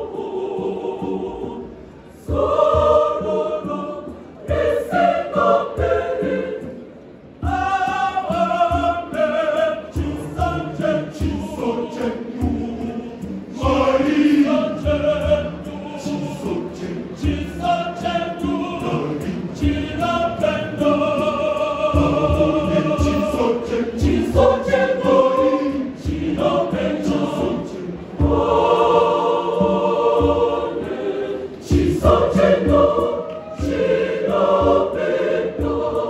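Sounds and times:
church choir singing in harmony: 0.0 - 36.0.

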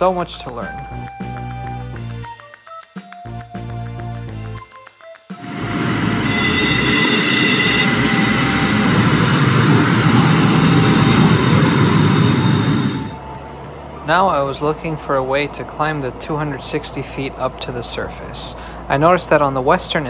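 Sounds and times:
background music: 0.0 - 17.0
train rumble: 5.4 - 13.6
high train whine: 5.4 - 17.4.

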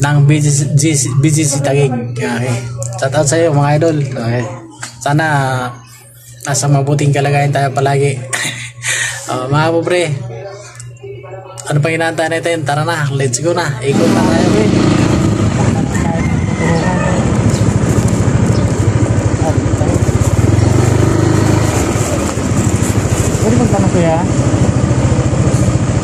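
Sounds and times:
person speaking: 13.9 - 16.0
motorcycle engine running: 13.9 - 26.0.

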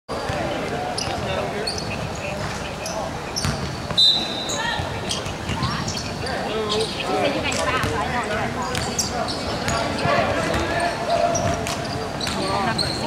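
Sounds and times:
players' voices echoing: 0.1 - 13.0.

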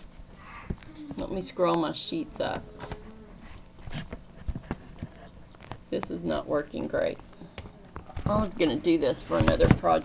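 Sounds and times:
paper sheets knocking and tapping: 9.2 - 10.0.

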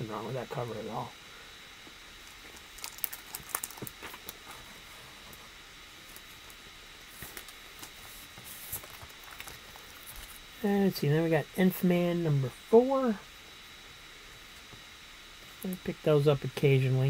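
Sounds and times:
comic books crinkling and tapping: 2.3 - 4.7, 6.1 - 10.4.

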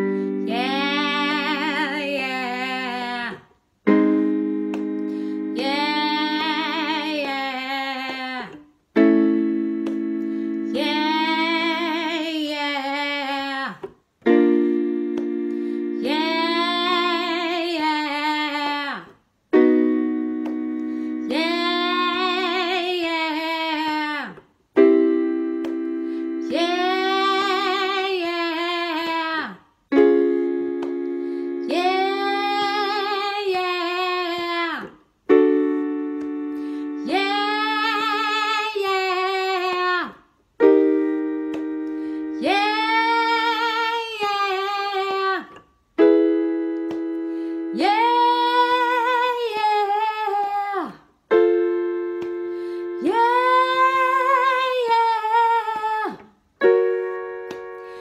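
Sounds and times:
electric keyboard chord: 0.0 - 2.9, 3.9 - 7.2, 8.9 - 12.2, 14.2 - 17.6, 19.5 - 22.8, 24.8 - 28.2, 29.9 - 34.1, 35.3 - 39.5, 40.6 - 44.0, 46.0 - 49.4, 51.3 - 55.9, 56.6 - 58.0
woman singing: 0.0 - 4.1, 4.7 - 19.2, 20.4 - 30.2, 30.8 - 35.0, 36.2 - 40.3, 42.3 - 46.1, 47.7 - 51.2, 52.8 - 56.4.

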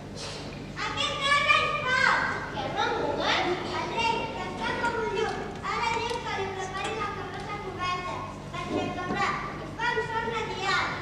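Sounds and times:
child speaking: 0.8 - 11.0.

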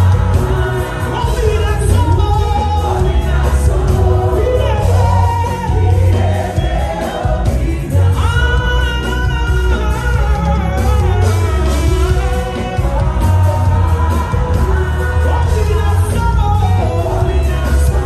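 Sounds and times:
band with heavy bass: 0.0 - 18.0.

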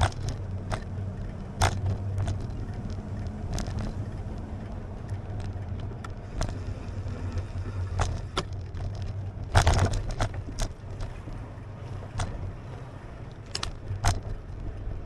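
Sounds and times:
bicycle rattling over cracks: 0.0 - 15.0
wind and tyres rumbling: 0.0 - 15.0.

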